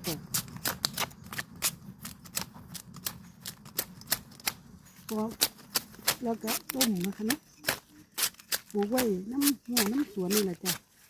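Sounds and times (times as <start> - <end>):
knife chopping bamboo shoot: 0.0 - 11.0.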